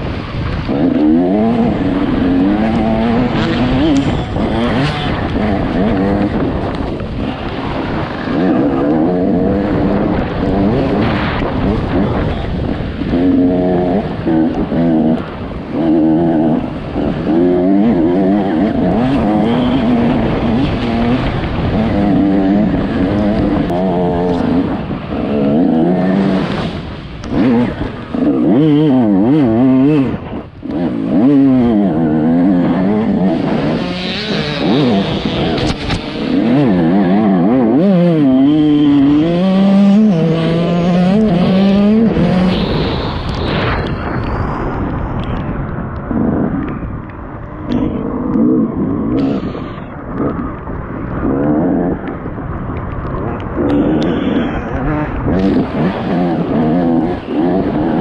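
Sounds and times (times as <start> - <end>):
dirt bike engine revving: 0.0 - 44.2, 53.1 - 58.0.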